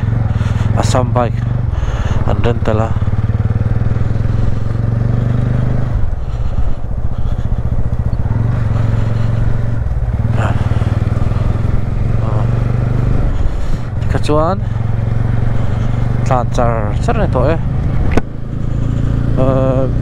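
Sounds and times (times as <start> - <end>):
motorcycle engine running: 0.0 - 20.0.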